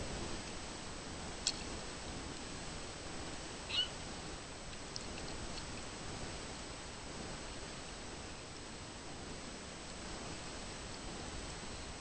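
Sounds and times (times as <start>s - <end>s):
sprinkler spray on water and grass: 0.0s - 12.0s
high-pitched chirp: 3.7s - 3.9s.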